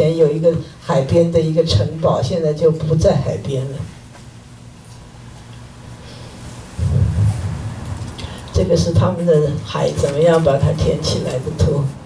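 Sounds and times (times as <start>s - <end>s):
low electrical hum: 0.0s - 12.0s
low rumble: 6.8s - 9.1s.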